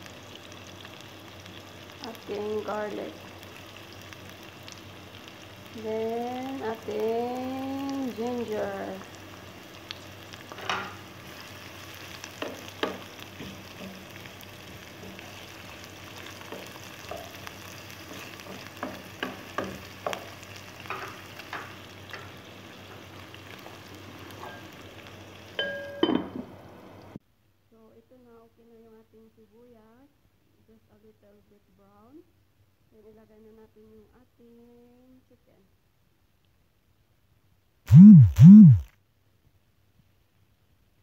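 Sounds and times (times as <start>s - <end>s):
food sizzling in hot oil: 0.0s - 27.2s
person humming faintly: 37.9s - 38.9s.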